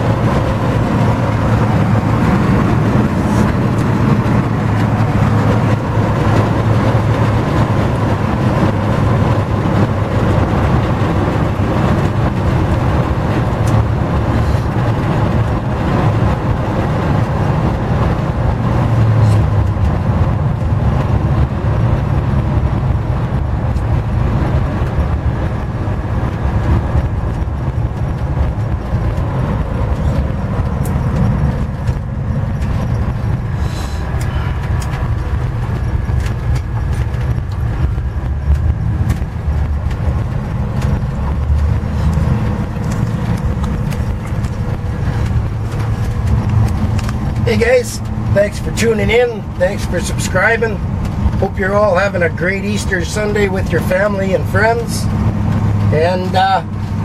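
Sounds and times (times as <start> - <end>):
car engine droning: 0.0 - 57.0
road and wind noise: 0.0 - 57.0.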